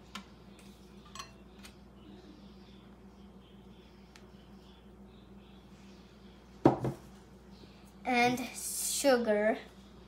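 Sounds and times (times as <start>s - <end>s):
kitchenware knocked on table: 6.6s - 7.0s.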